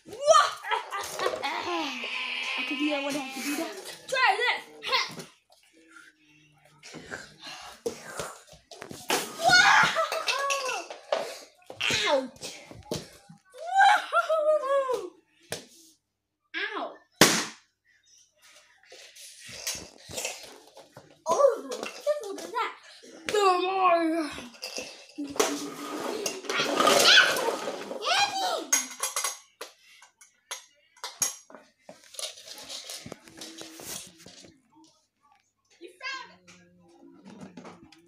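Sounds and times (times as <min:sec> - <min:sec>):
child vocalizing in play: 0:01.4 - 0:03.8.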